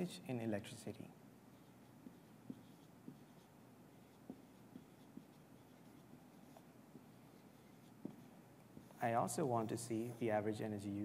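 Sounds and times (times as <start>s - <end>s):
marker writing on flip chart: 1.5s - 10.4s.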